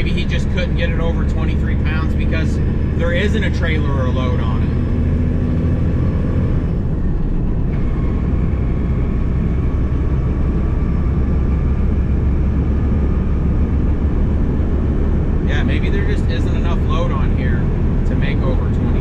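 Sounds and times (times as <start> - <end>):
man speaking: 0.0 - 4.8, 15.4 - 19.0
diesel engine rumble: 0.0 - 19.0
faint turbo whine: 0.0 - 19.0
road noise: 0.0 - 19.0.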